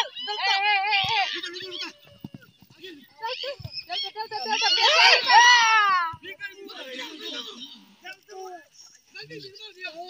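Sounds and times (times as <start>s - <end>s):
people shouting: 0.0s - 8.1s.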